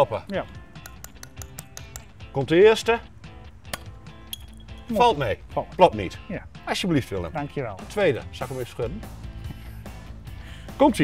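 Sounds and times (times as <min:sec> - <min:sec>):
background music: 0:00.0 - 0:11.0
glassy bottle clink: 0:03.8 - 0:05.0.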